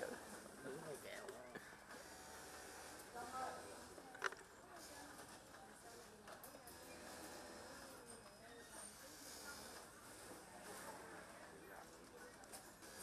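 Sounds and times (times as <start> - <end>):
quiet conversation: 0.0 - 13.0.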